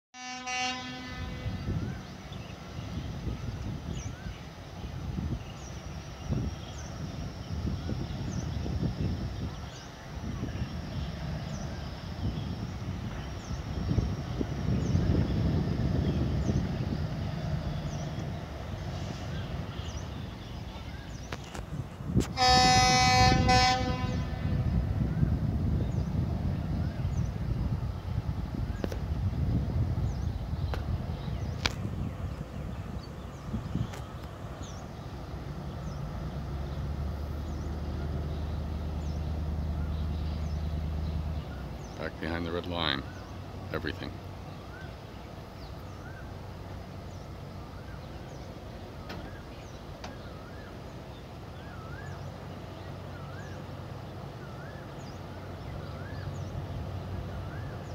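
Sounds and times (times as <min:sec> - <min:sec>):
locomotive horn blast: 0:00.2 - 0:01.8, 0:22.2 - 0:24.7
low rumble of train: 0:00.2 - 0:57.9.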